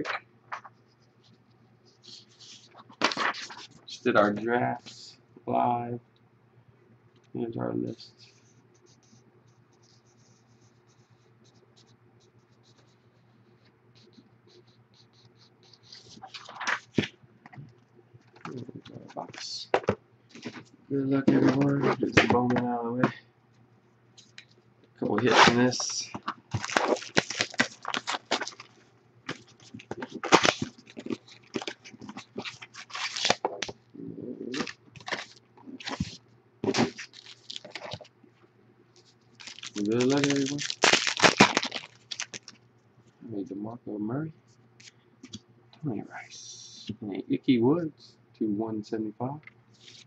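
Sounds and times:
faint steady hum: 0:00.0 - 0:50.0
paper sheet rustling: 0:02.0 - 0:04.0, 0:15.8 - 0:17.1, 0:25.2 - 0:33.8, 0:34.5 - 0:38.1, 0:39.0 - 0:42.6, 0:49.8 - 0:50.0
plastic wrapping crinkling: 0:25.5 - 0:33.7, 0:34.5 - 0:38.1, 0:39.0 - 0:42.6.

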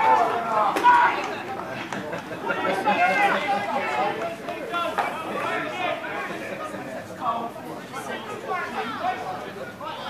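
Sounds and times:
chatter of spectators: 0:00.0 - 0:10.0.

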